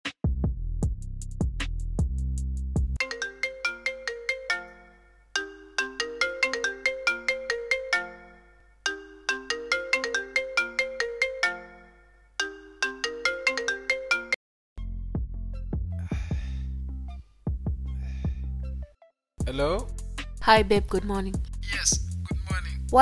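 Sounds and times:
smartphone ringtone: 3.0 - 14.4.

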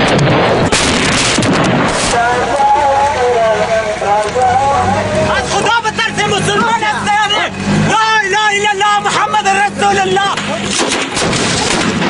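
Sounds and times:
low rumble: 0.0 - 8.0
voices talking: 2.1 - 10.9.

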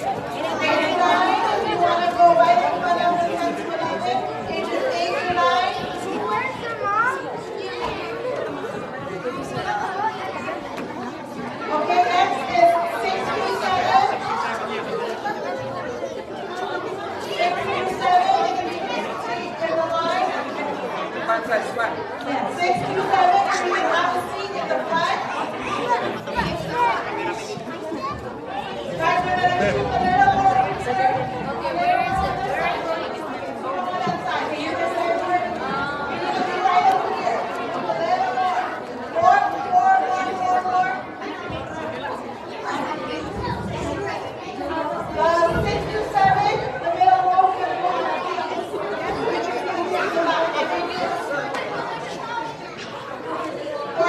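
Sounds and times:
babble of overlapping voices: 0.0 - 54.0.

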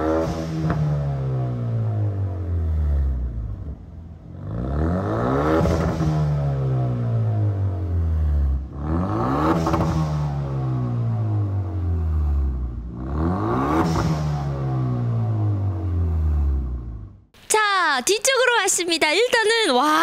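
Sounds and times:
car engine revving: 0.0 - 17.3.

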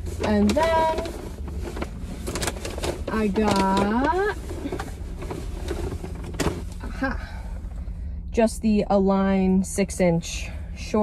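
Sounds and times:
clothing rustling in shopping bag: 0.0 - 7.2
low hum inside car: 0.0 - 11.0.

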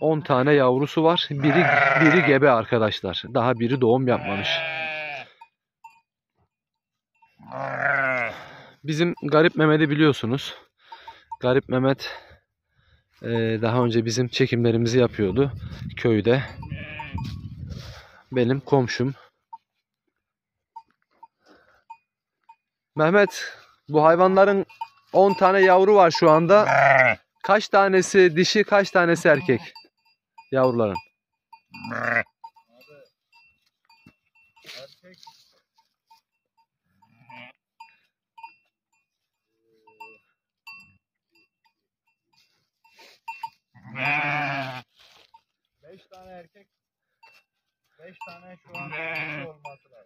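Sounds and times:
faint sheep bleat: 1.4 - 2.4, 4.1 - 5.4, 7.4 - 8.6, 16.4 - 17.4, 26.6 - 27.3, 31.7 - 32.4, 37.0 - 37.6, 43.8 - 45.0, 48.6 - 49.7
quiet tinks: 5.4 - 7.4, 20.7 - 23.6, 29.4 - 43.7
small bell clinking: 5.4 - 7.4, 20.7 - 22.7, 24.5 - 26.5, 29.2 - 37.2, 37.8 - 43.7.

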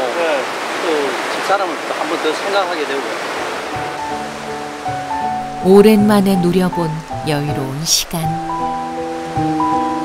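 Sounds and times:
water rushing over rapids: 0.0 - 6.0
background music: 3.7 - 10.0.

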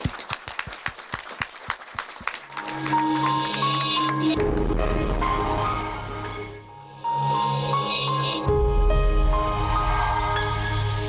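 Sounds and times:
audience clapping: 0.0 - 5.2.

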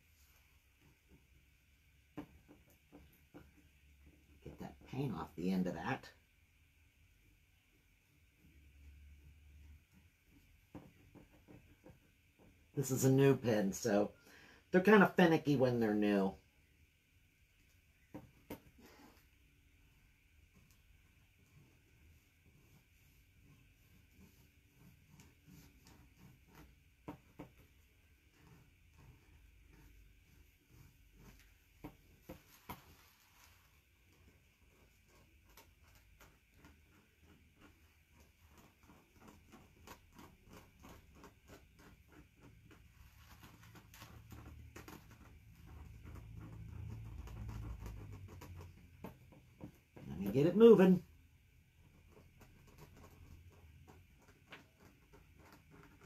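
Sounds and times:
paint pen scratching on canvas: 18.0 - 56.0.

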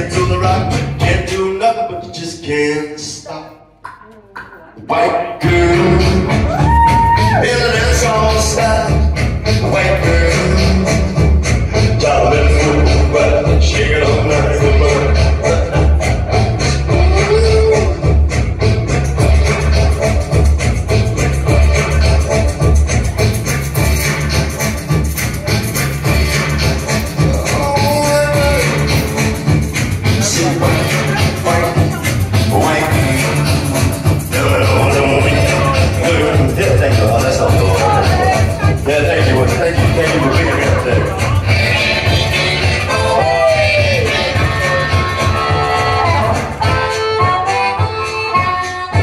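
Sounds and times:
loud amplified live music: 0.0 - 49.0.

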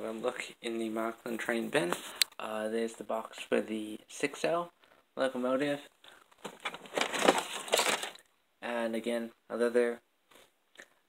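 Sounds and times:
hands rummaging through boxes: 6.1 - 8.2.

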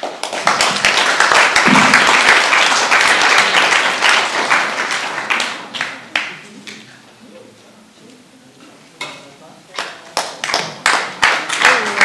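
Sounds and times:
audience applauding: 0.0 - 6.5, 9.8 - 12.0.

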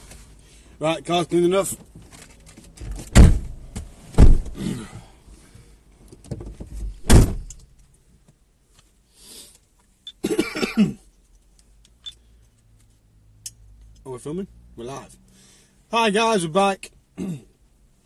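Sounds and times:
knocks and rustles in a car: 1.6 - 4.6, 6.0 - 8.4
heavy thump: 3.1 - 4.6, 7.0 - 7.5.

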